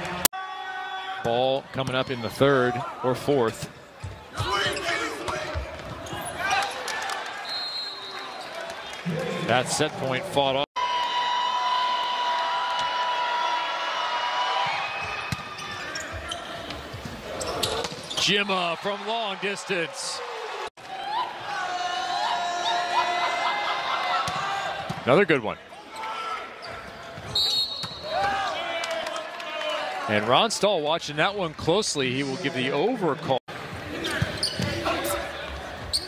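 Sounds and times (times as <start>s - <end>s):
arena crowd noise: 0.0s - 36.0s
sneaker squeak: 15.2s - 18.3s, 26.6s - 28.1s, 34.0s - 35.2s, 35.8s - 36.0s.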